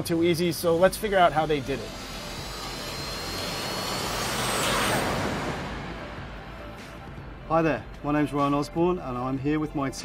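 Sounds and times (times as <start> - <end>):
helicopter rotor and engine: 0.4 - 7.3.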